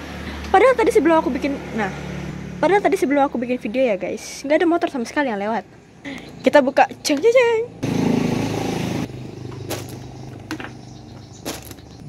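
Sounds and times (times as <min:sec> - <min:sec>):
motorcycle engine running: 0:07.6 - 0:12.0.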